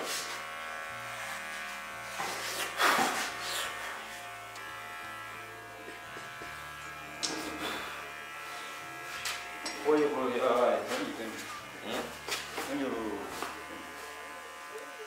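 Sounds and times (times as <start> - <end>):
electric hair clippers buzzing: 0.0 - 15.0.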